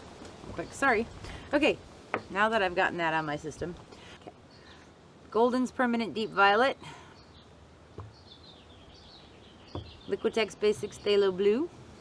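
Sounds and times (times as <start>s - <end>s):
bird twittering: 7.2s - 11.2s.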